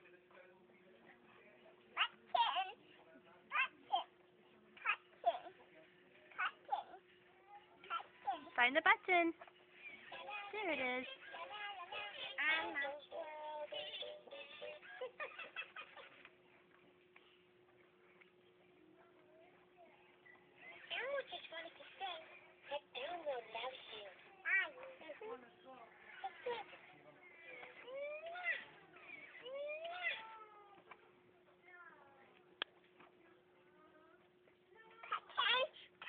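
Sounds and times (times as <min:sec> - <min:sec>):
backing music from toy speaker: 0:09.9 - 0:15.2
toy singing in high voice: 0:10.1 - 0:14.8.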